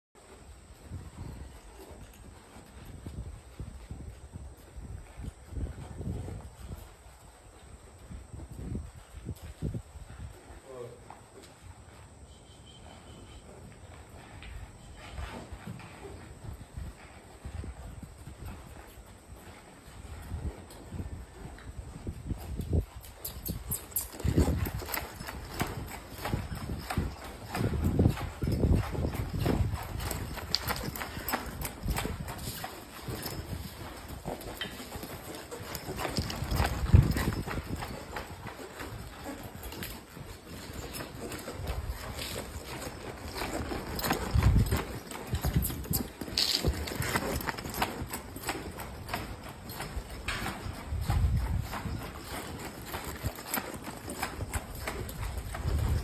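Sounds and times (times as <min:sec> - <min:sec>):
horse hoofbeats on dirt: 0:00.2 - 0:56.0.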